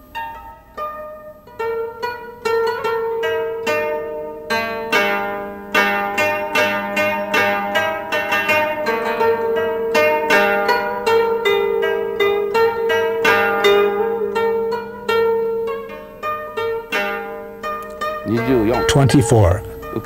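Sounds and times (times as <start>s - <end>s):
plucked zither-like melody: 0.0s - 20.0s.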